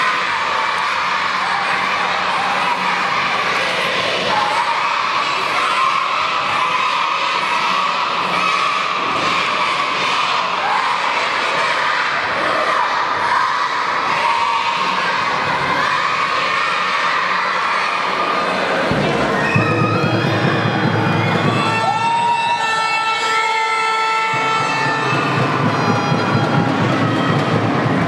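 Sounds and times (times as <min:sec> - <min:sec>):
children shouting and cheering: 0:00.0 - 0:28.0.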